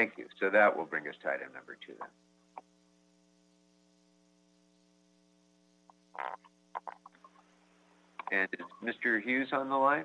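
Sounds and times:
electrical mains hum: 0:00.0 - 0:10.0
short croaky sound: 0:06.1 - 0:07.4.

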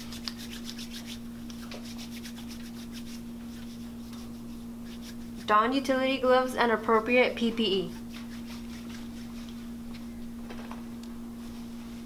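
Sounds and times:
hands rubbing together: 0:00.0 - 0:05.6, 0:07.9 - 0:10.1.

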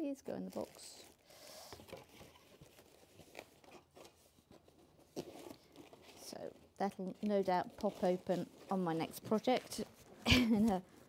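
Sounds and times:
paper packets rustling: 0:00.1 - 0:11.0.

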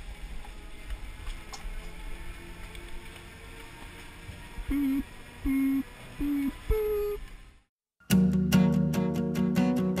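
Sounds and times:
higher longer beep: 0:04.7 - 0:07.2
short low electronic beeps: 0:04.7 - 0:07.2.

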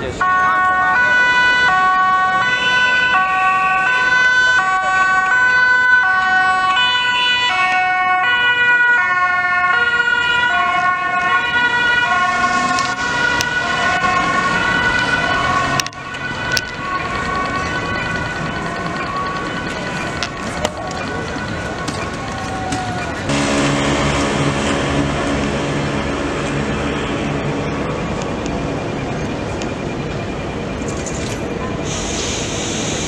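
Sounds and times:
ambulance two-tone siren passing: 0:00.0 - 0:32.1.

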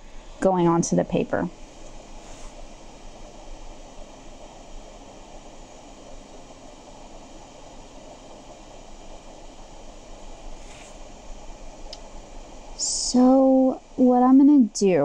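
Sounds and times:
low hiss of room noise: 0:00.0 - 0:15.0.

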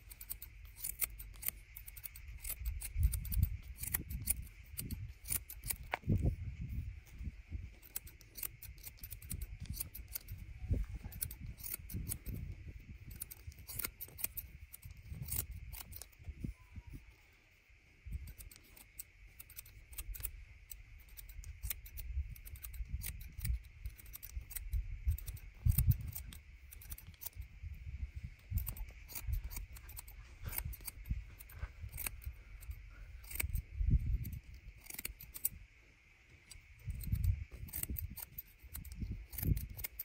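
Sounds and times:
scissors snipping hair: 0:00.0 - 0:06.4, 0:07.8 - 0:16.3, 0:18.1 - 0:27.5, 0:28.3 - 0:35.6, 0:36.4 - 0:40.0.

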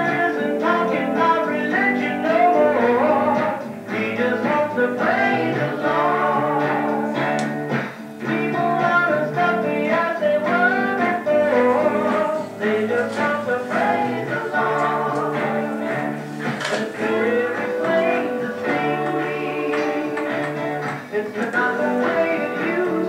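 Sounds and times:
man singing: 0:00.0 - 0:07.4, 0:08.2 - 0:23.0
guitar accompaniment: 0:00.0 - 0:23.0.

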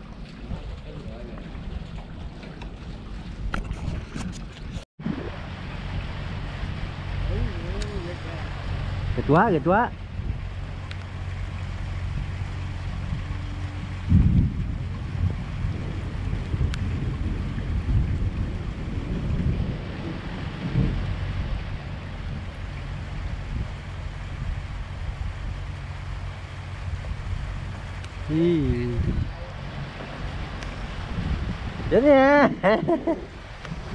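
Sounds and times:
wind buffeting microphone: 0:00.0 - 0:33.9.

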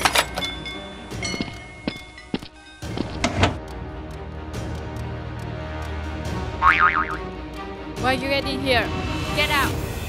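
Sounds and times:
background music: 0:00.0 - 0:10.0
comic wobbling tone effect: 0:06.6 - 0:07.2.

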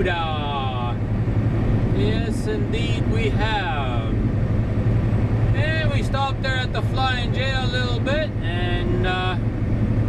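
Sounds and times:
road noise: 0:00.0 - 0:10.0
truck diesel engine drone: 0:00.0 - 0:10.0
man making drawn-out sounds: 0:08.4 - 0:09.4.

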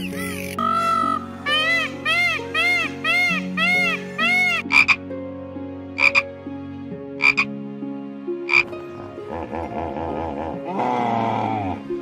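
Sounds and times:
soft background music: 0:00.0 - 0:12.0.

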